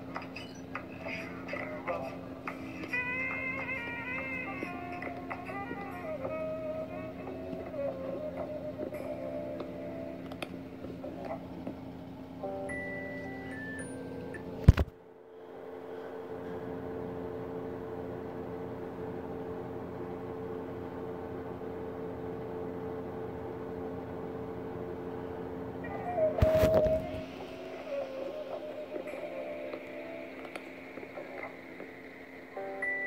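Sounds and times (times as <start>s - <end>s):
steady droning hum: 0.0s - 33.0s.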